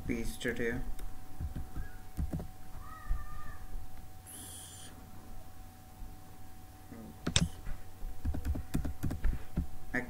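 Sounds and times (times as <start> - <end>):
keyboard clicks: 7.2 - 7.6, 8.2 - 9.3.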